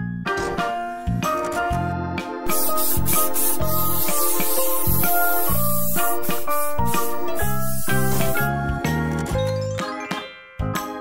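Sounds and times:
cheerful children's music: 0.0 - 11.0
spray paint hiss: 2.5 - 8.5.

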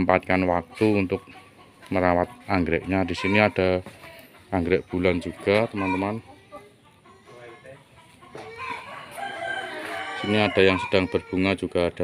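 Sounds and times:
rooster crowing: 8.4 - 11.2.

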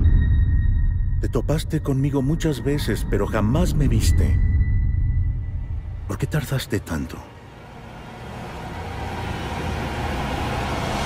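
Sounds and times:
sound design riser: 7.6 - 11.0.

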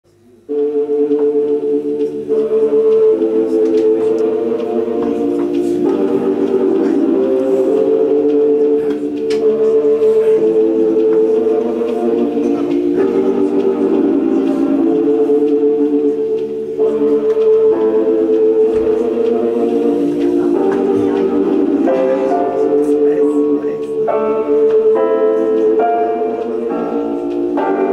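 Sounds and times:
electronic keyboard chords: 0.1 - 27.9.

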